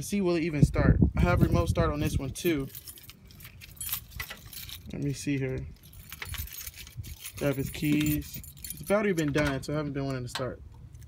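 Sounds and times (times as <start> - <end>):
keys jangling: 2.0 - 9.6.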